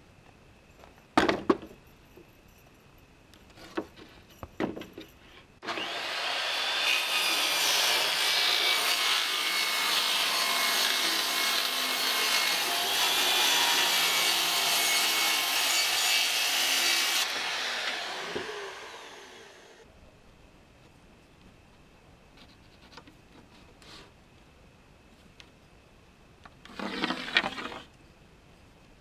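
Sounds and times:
power saw cutting plywood: 0:05.6 - 0:19.8.

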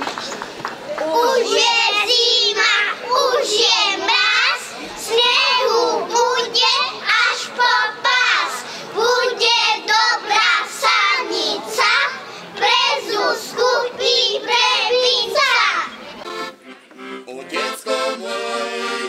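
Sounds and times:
children singing into microphones: 0:01.0 - 0:16.0.

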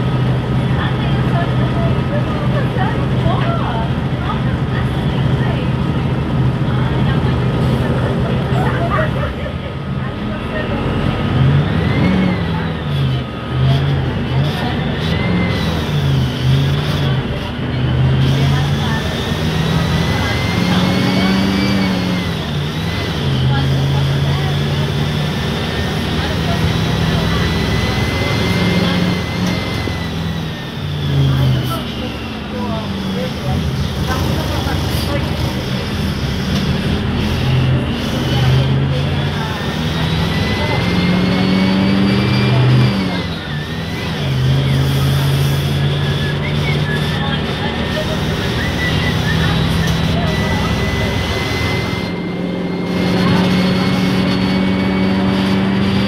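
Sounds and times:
bus diesel engine accelerating: 0:00.0 - 0:56.0
high whine: 0:00.0 - 0:56.0.

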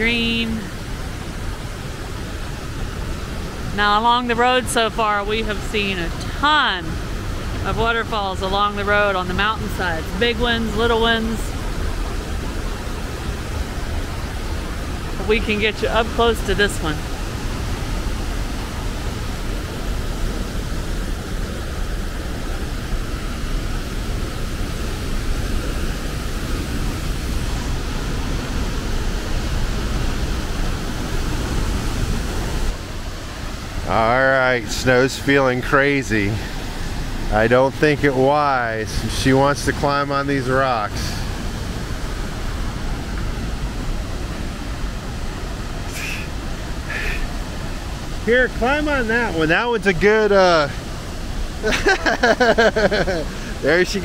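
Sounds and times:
waterfall rushing: 0:00.0 - 0:54.0
person laughing: 0:51.6 - 0:53.6.

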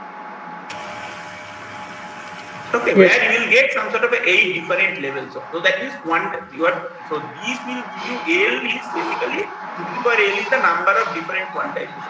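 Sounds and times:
steady background hiss: 0:00.5 - 0:11.9.

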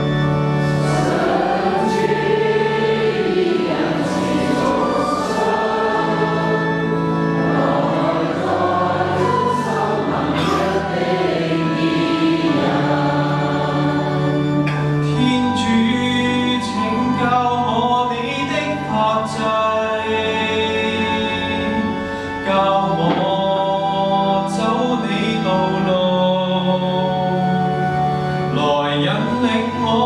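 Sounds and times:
organ notes: 0:00.0 - 0:30.0
group singing a hymn: 0:00.6 - 0:15.3, 0:22.5 - 0:25.6.

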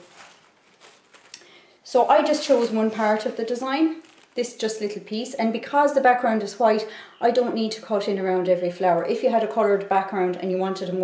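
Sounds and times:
paper serviette rustling: 0:00.0 - 0:01.4, 0:02.0 - 0:04.5.

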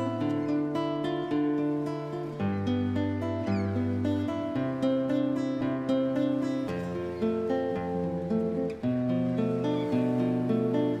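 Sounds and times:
solo classical guitar: 0:00.0 - 0:11.0.

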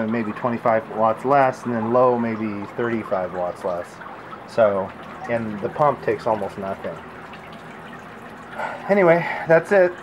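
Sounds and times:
water trickling into plastic tub: 0:00.0 - 0:10.0.

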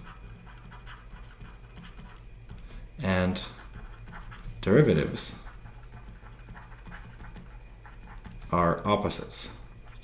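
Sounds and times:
low steady hum: 0:00.0 - 0:10.0
stylus scratching on drawing tablet: 0:00.0 - 0:10.0.

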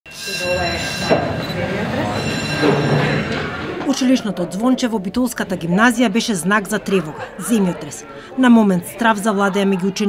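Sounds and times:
electric bell ringing: 0:00.1 - 0:06.6
murmur of voices: 0:00.1 - 0:10.0.

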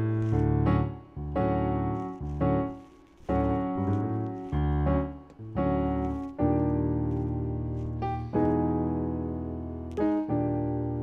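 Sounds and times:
electronic keyboard chords: 0:00.0 - 0:11.0.

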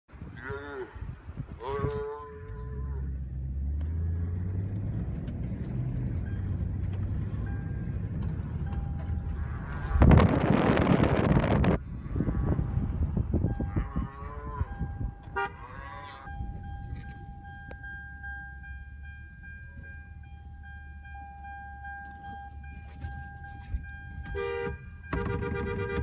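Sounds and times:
cow bellowing: 0:00.3 - 0:03.2, 0:13.5 - 0:17.1
low engine hum: 0:02.3 - 0:26.0.

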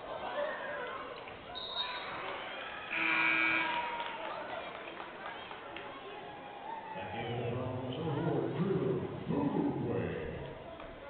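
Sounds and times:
crowd murmur: 0:00.0 - 0:11.0
scoreboard horn buzzing: 0:02.9 - 0:03.9.

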